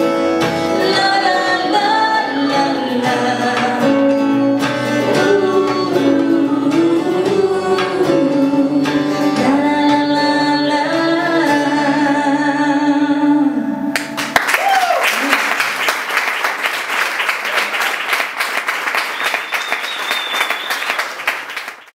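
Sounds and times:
acoustic guitar: 0.0 - 14.4
audience applause and cheering: 14.0 - 22.0.

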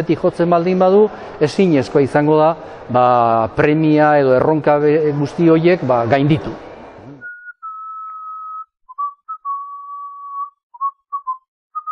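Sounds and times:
person whistling a tune: 7.2 - 11.9.

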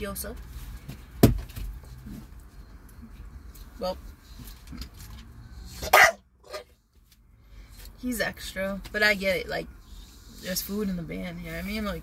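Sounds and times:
dog barking: 5.8 - 6.7.

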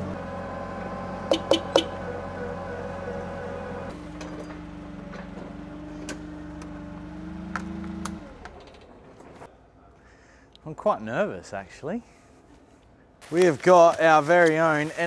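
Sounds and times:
forklift engine humming: 0.0 - 9.5.

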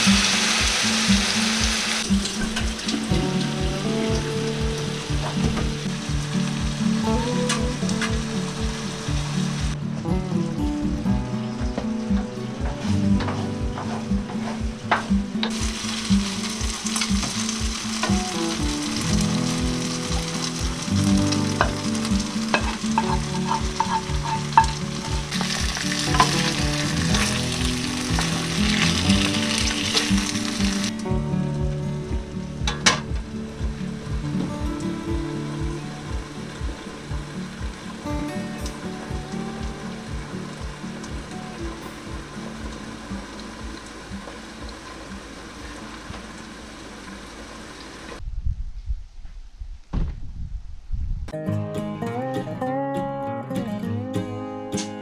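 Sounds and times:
food sizzling in frying pan: 0.0 - 9.8, 13.9 - 48.2
soft music with steady beat: 0.0 - 47.6, 51.3 - 55.0.

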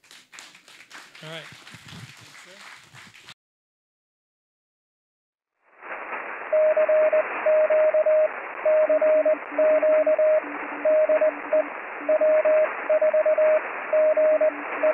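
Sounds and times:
radio static hiss: 5.7 - 14.9
faint low-pitched morse code signal: 6.5 - 14.9
high-pitched morse code signal: 6.5 - 14.9.

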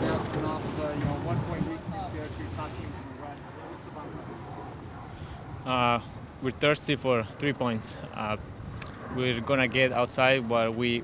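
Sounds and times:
wind noise on microphone: 0.0 - 3.2, 8.3 - 9.9.

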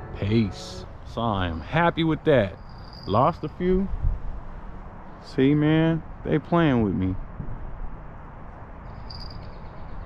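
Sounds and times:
low steady rush: 0.0 - 10.0.

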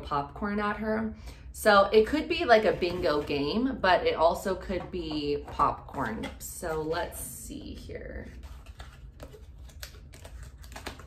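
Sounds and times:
wrapping paper clicks and crackles: 8.4 - 11.0.

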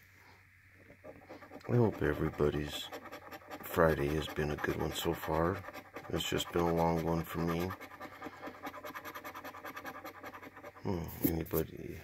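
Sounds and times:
coin scratching lottery ticket: 1.0 - 11.6.

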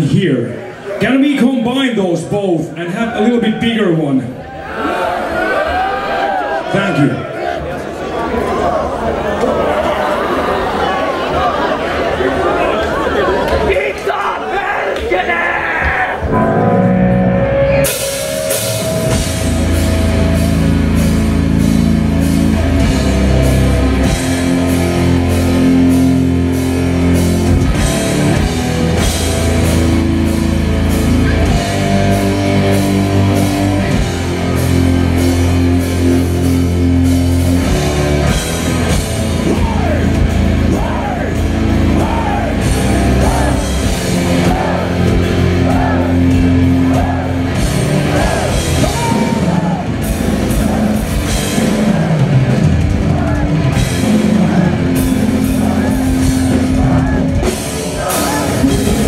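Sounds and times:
distorted electric guitars: 15.4 - 59.0
bass chugging: 16.2 - 59.0
fast drum-kit beats: 17.8 - 59.0.

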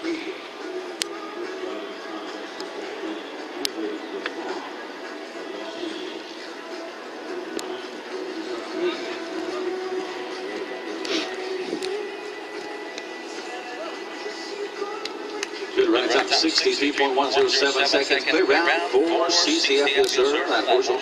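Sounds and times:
faint background music: 0.0 - 21.0
murmur of voices: 0.0 - 21.0.

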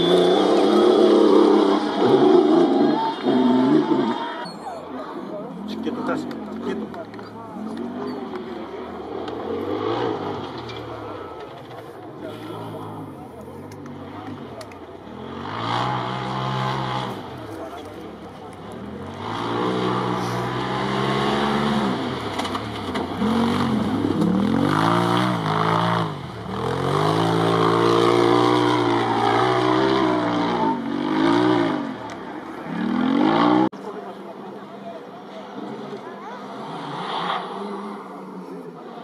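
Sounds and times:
rally car engine revving: 0.0 - 4.4, 5.4 - 34.4
steady engine noise: 5.3 - 39.0.

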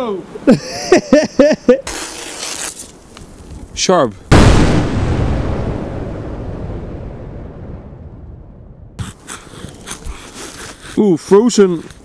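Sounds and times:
deep cinematic boom: 4.3 - 9.0.

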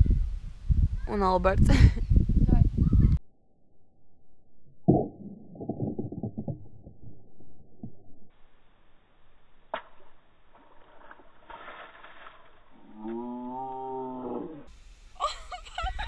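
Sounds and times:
muffled low splashing: 4.6 - 8.3.

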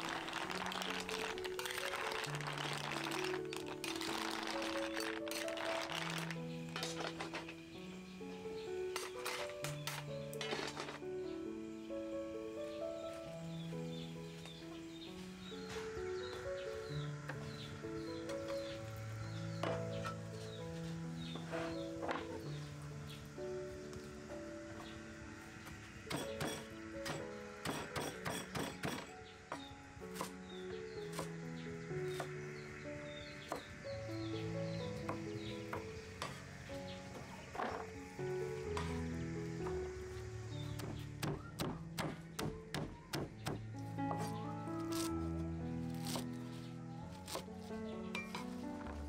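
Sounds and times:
slow melodic background music: 0.0 - 49.0
cleaver chopping on wooden board: 40.8 - 43.7.

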